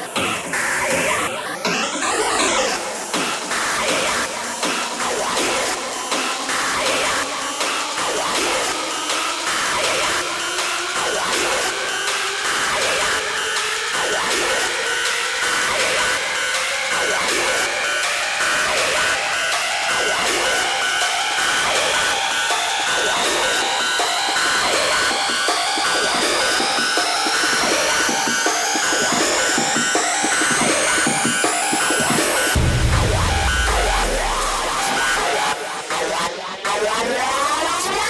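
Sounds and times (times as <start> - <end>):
synth sweep rising in pitch: 32.6 - 35.3
dense wash of noise: 32.6 - 35.4.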